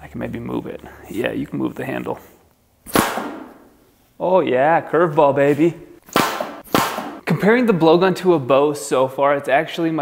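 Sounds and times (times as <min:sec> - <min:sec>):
blowgun dart puff: 0:02.9 - 0:03.7, 0:06.1 - 0:07.2.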